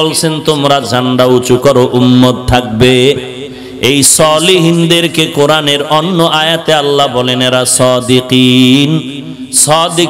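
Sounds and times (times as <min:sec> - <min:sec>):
man chanting sing-song preaching: 0:00.0 - 0:10.0.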